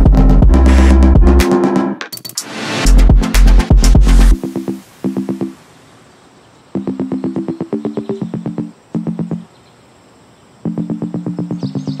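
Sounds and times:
electronic music with repeated chords: 0:00.0 - 0:05.7, 0:06.8 - 0:09.5, 0:10.6 - 0:12.0.

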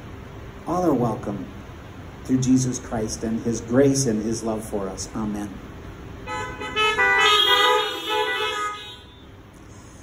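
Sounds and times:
car horns honking: 0:06.2 - 0:09.4.

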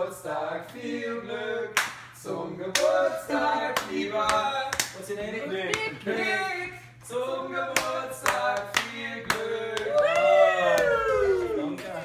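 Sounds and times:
hands clapping: 0:01.8 - 0:02.1, 0:03.8 - 0:05.0, 0:07.8 - 0:11.0.

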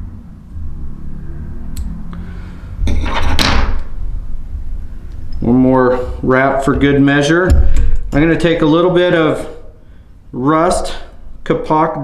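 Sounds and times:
low handling rumble: 0:03.8 - 0:11.4.

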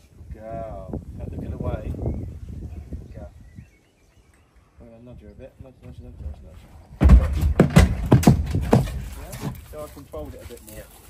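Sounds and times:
horse hooves knocking: 0:07.0 - 0:09.9.

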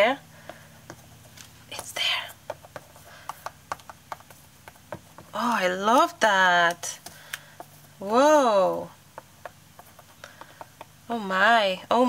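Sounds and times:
fingers tapping on canvas: 0:00.3 - 0:11.4.

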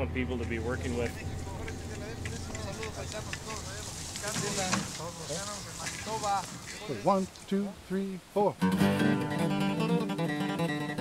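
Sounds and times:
low wind rumble: 0:00.0 - 0:08.3
distant voices talking: 0:00.0 - 0:08.6.

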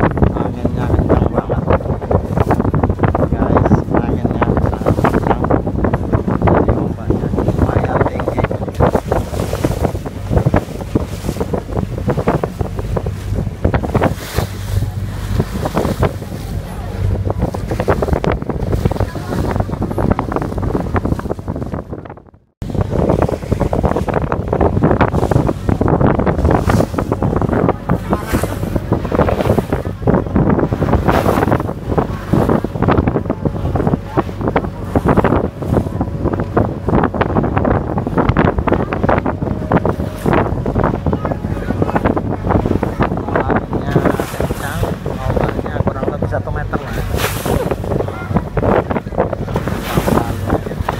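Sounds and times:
boat engine running: 0:00.0 - 0:50.9
water rushing along hull: 0:00.0 - 0:50.9
wind buffeting microphone: 0:00.0 - 0:50.9.

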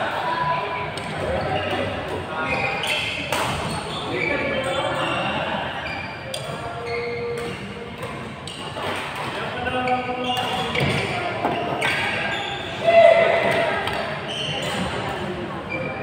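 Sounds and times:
players' voices: 0:00.0 - 0:16.0
shoes squeaking on court floor: 0:01.0 - 0:12.8, 0:13.4 - 0:16.0.

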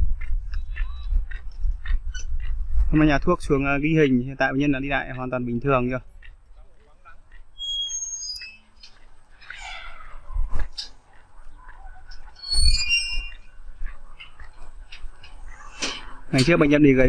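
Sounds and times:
wind rumbling on microphone: 0:00.0 - 0:05.2, 0:09.6 - 0:17.0
birds chirping: 0:05.6 - 0:16.4.

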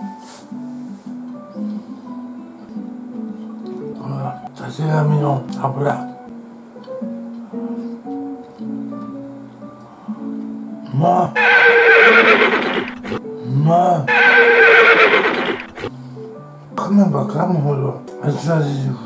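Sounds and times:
soft guitar music: 0:00.0 - 0:11.4, 0:12.9 - 0:14.1, 0:15.8 - 0:19.0
horse whinnying: 0:11.4 - 0:13.2, 0:14.1 - 0:15.9.

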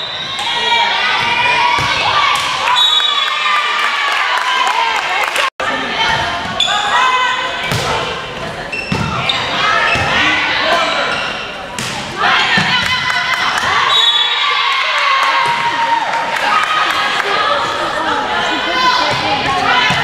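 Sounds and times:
players and spectators shouting: 0:00.0 - 0:08.4, 0:12.1 - 0:20.0.

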